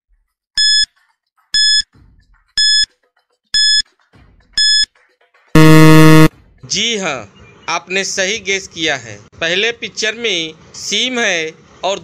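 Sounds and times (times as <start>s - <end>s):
short high beeps: 0.6s - 0.9s, 1.6s - 1.8s, 2.6s - 2.9s, 3.6s - 3.8s, 4.6s - 4.9s, 5.6s - 6.3s
harsh buzzer: 1.6s - 1.8s, 2.6s - 2.9s, 3.6s - 3.8s, 4.6s - 4.8s, 5.6s - 6.3s.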